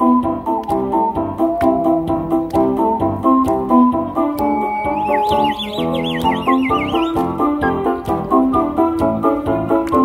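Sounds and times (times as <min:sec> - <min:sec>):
keyboard backing music: 0:00.0 - 0:10.0
high warbling whistle: 0:04.4 - 0:07.2.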